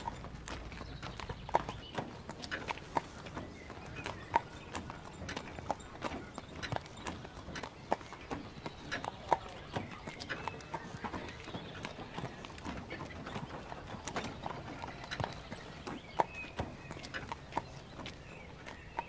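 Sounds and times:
horse hooves clip-clopping: 0.0s - 19.0s
wooden cart rolling on dirt: 0.0s - 19.0s.

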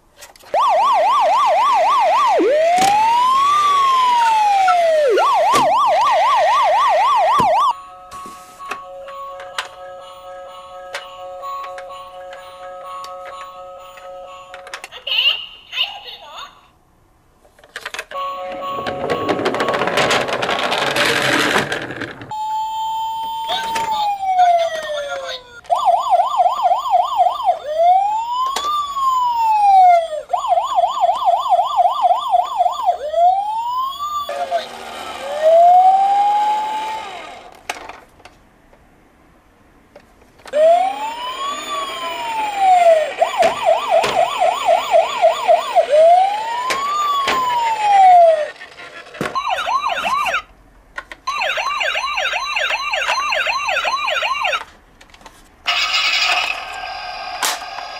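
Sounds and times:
toy electronic siren wailing: 0.5s - 7.8s, 22.3s - 37.5s, 40.6s - 48.6s, 49.2s - 50.5s, 51.3s - 54.6s, 55.7s - 57.9s.

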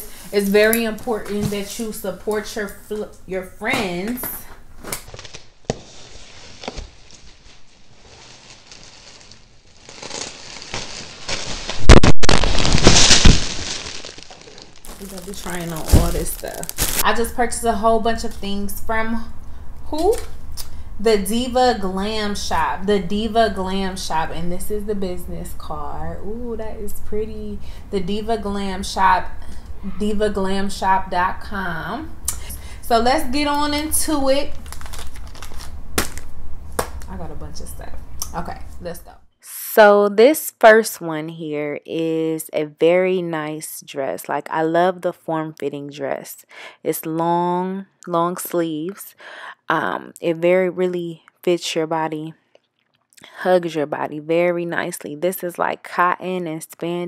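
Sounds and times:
plastic and cardboard crinkling: 4.8s - 17.2s, 34.3s - 37.1s.

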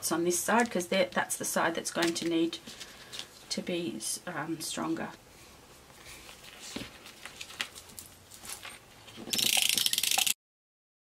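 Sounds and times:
paper handling: 6.0s - 9.2s.

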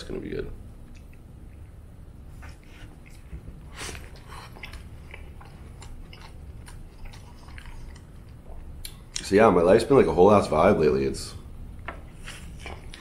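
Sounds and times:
man chewing food: 0.7s - 9.2s, 12.0s - 13.0s.

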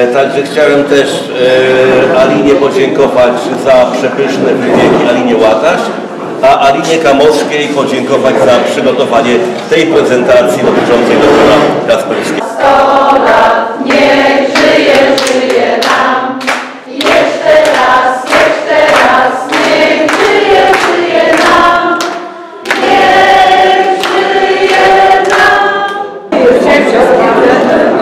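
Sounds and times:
group of people singing: 1.3s - 5.3s, 10.0s - 28.0s
hands clapping: 13.8s - 26.0s.

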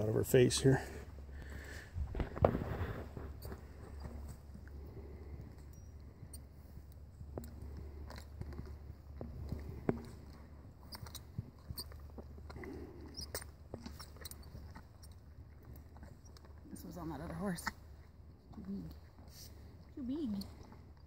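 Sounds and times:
horse chewing on a bit: 1.0s - 21.0s
bit and bridle clinking: 2.8s - 21.0s.

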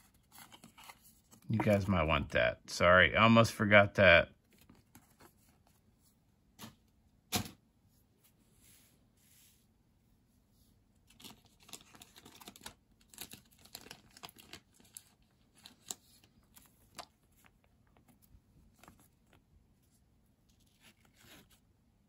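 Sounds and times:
foil wrappers crinkling: 11.1s - 17.3s.

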